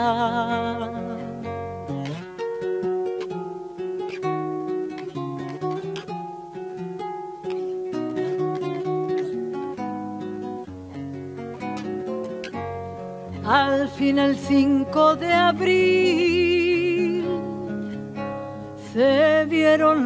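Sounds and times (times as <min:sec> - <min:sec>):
acoustic guitar playing: 0:00.0 - 0:20.0.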